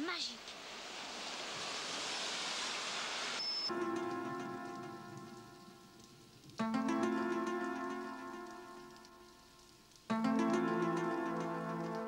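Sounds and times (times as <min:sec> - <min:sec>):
rushing hiss: 0:00.0 - 0:06.6.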